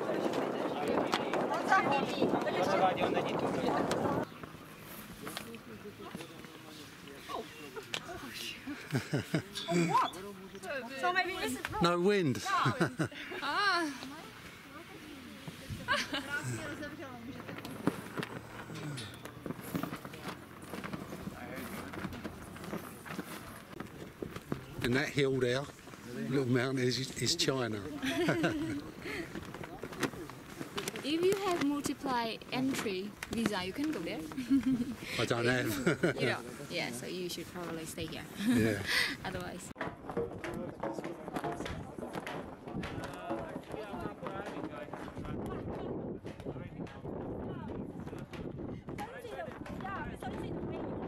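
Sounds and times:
flag flapping in wind: 0:00.0 - 0:06.6, 0:14.2 - 0:38.4, 0:39.2 - 0:51.0
people talking indistinctly: 0:00.0 - 0:19.2, 0:24.5 - 0:51.0.

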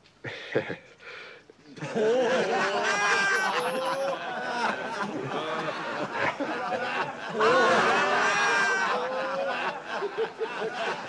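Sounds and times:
men laughing and calling out: 0:01.8 - 0:11.0.

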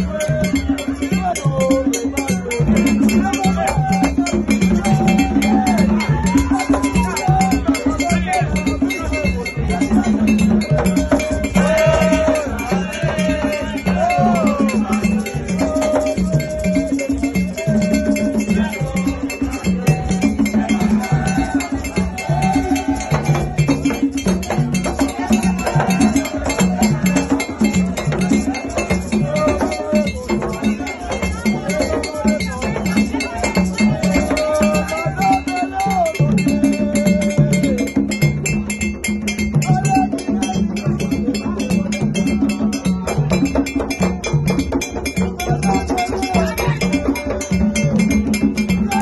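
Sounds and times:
hand drumming: 0:00.0 - 0:49.0
maraca shaking: 0:00.0 - 0:49.0
metal bell ringing: 0:00.0 - 0:49.0.

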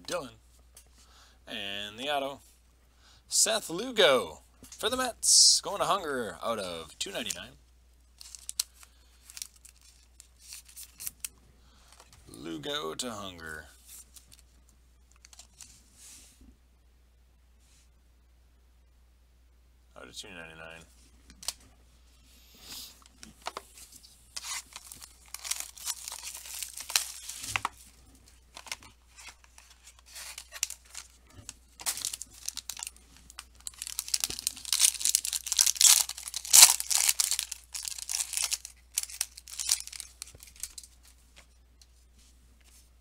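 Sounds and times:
plastic wrapper tearing and crinkling: 0:08.2 - 0:11.3, 0:23.1 - 0:27.9, 0:28.5 - 0:41.0.

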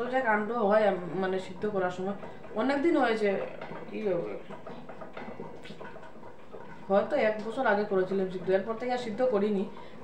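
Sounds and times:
woman speaking: 0:00.0 - 0:04.5, 0:06.9 - 0:09.8.

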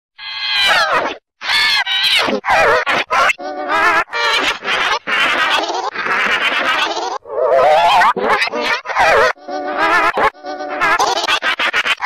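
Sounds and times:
distorted high-pitched cries: 0:00.2 - 0:12.0.

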